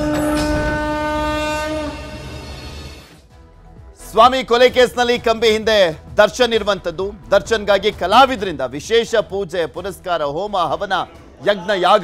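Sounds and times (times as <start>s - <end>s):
long steady horn-like tone: 0.0s - 3.2s.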